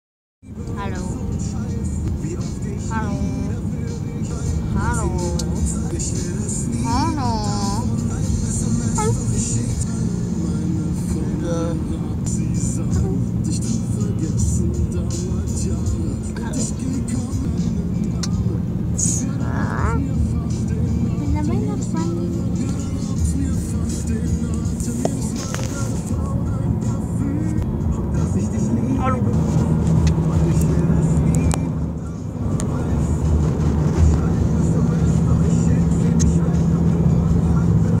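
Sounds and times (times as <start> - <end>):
car engine and road drone: 0.4 - 38.0
music: 0.4 - 38.0
person speaking: 0.8 - 1.3, 2.9 - 3.6, 4.7 - 5.9, 6.8 - 7.9, 9.0 - 9.3, 12.9 - 13.2, 19.0 - 20.1, 21.2 - 22.5, 28.8 - 29.4.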